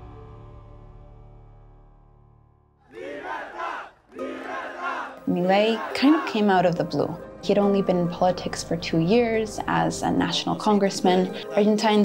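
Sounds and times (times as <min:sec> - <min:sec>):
background music: 0:02.9 - 0:12.0.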